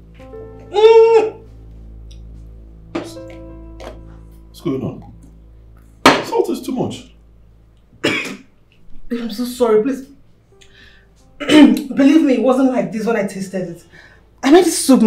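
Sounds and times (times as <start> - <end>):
woman groaning: 0.7 - 1.4
woman coughing and spluttering: 8.0 - 8.5, 11.4 - 11.8.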